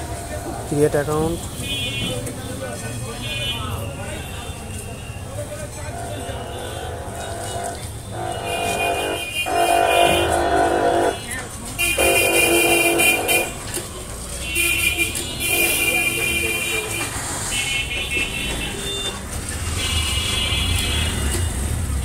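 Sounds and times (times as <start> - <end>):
traffic rumble: 0.0 - 22.0
long horn blasts: 6.0 - 13.6, 14.6 - 17.1.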